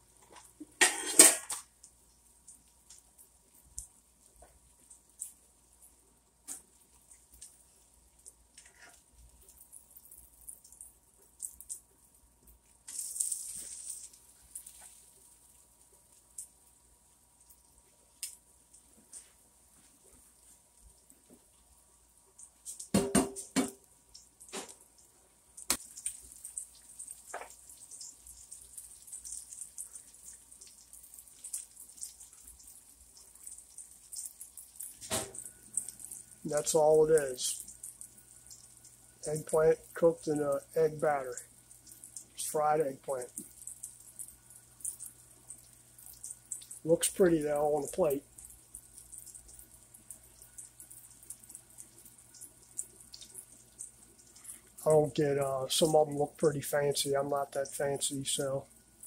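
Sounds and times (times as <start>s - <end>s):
food sizzling in oil: 12.6s - 54.8s
crackling pops: 25.6s - 27.6s.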